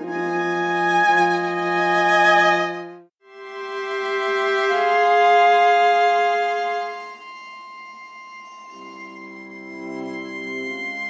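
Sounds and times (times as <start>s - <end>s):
viola playing sustained notes: 0.0s - 11.0s.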